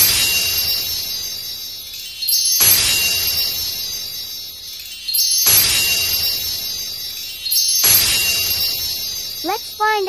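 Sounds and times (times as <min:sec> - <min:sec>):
bright chime shimmer: 0:00.0 - 0:10.0.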